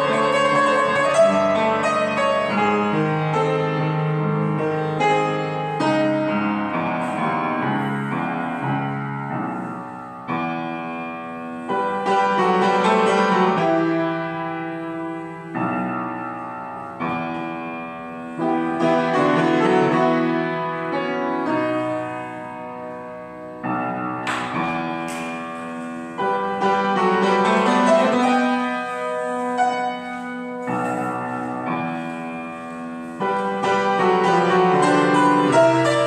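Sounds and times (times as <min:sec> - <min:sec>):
solo piano playing: 0:00.0 - 0:36.0.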